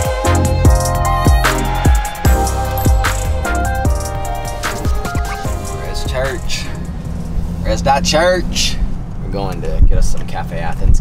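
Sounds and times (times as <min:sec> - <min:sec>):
car engine and road rumble: 0:00.5 - 0:11.0.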